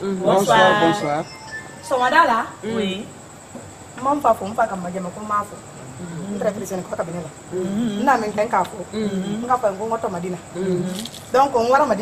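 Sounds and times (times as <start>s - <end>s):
people calling out and chattering: 0.0s - 3.4s, 5.2s - 11.4s.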